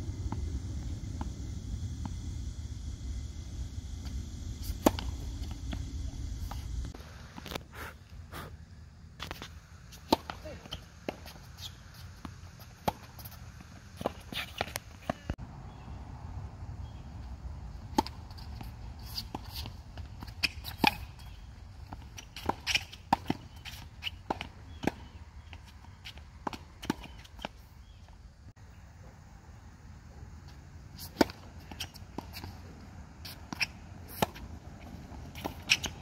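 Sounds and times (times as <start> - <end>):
wind rumble on microphone: 0.0 - 7.0
shoe scuffs on hard court: 9.2 - 15.3, 18.0 - 27.9, 31.0 - 36.0.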